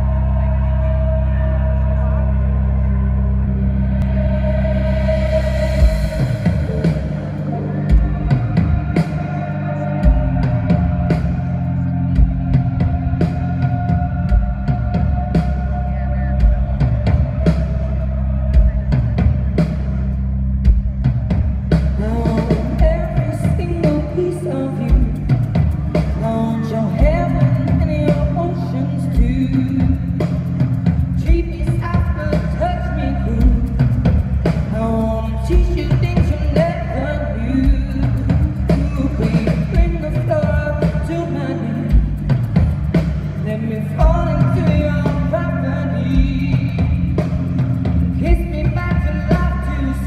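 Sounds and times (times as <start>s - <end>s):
drum beat and bass: 4.0s - 50.0s.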